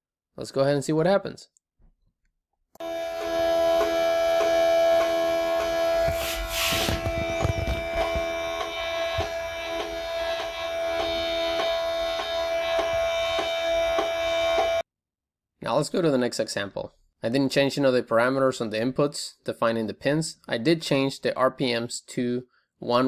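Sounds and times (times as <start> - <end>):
stepper motor tone: 2.8 - 14.8.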